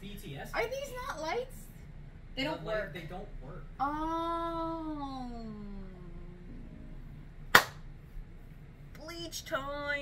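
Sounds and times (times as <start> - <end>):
sharp hand clap: 7.5 - 7.8.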